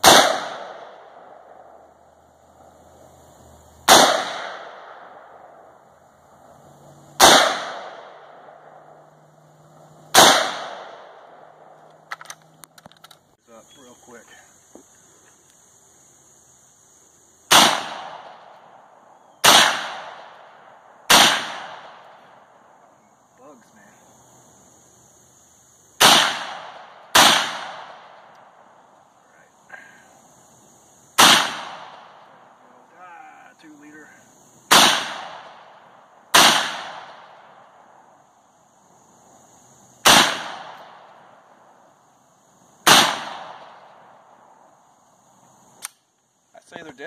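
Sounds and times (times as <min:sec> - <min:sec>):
rifle shots with echo: 0:00.0 - 0:01.8, 0:03.8 - 0:05.7, 0:07.2 - 0:09.0, 0:10.1 - 0:12.2, 0:17.5 - 0:18.8, 0:19.4 - 0:22.5, 0:26.0 - 0:28.8, 0:31.2 - 0:32.4, 0:34.7 - 0:37.6, 0:40.0 - 0:41.3, 0:42.8 - 0:44.2.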